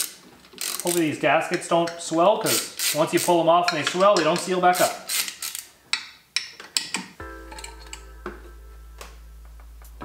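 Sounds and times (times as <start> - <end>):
held musical chord: 7.2 - 10.0
low hum: 7.2 - 10.0.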